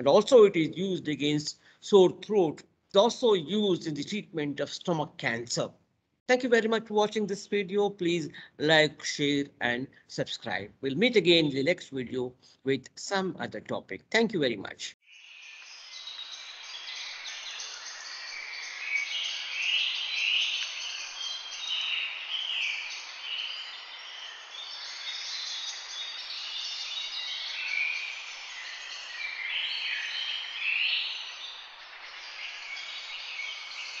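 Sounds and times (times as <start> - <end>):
small birds chirping: 14.2 - 34.0.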